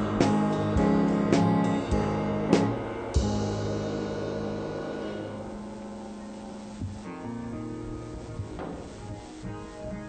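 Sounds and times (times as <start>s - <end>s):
band music with guitar and drums: 0.0s - 10.0s
held guitar chord: 0.0s - 10.0s.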